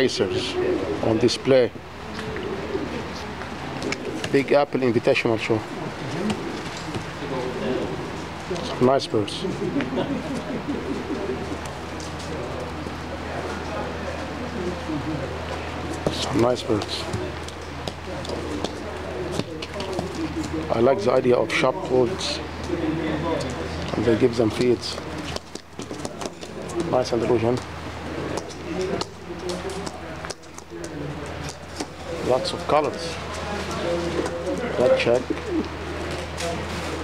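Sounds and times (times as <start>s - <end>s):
pigeons cooing: 0.0s - 21.2s, 22.1s - 37.0s
people talking: 0.0s - 37.0s.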